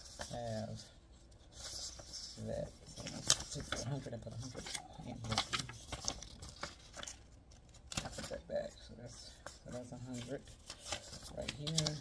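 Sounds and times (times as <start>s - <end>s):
paper bills rustling: 1.5s - 12.0s.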